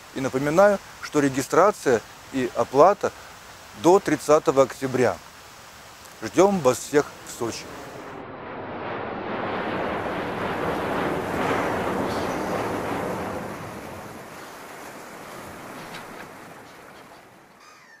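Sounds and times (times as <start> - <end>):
sea wave washing: 0.0 - 18.0.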